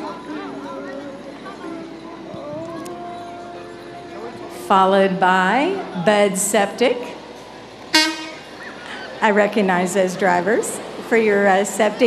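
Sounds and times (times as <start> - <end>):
vehicle horn toot: 7.9 - 8.6.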